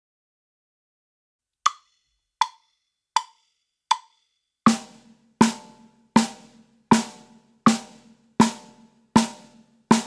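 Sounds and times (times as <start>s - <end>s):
count-in clicks: 1.7s - 4.3s.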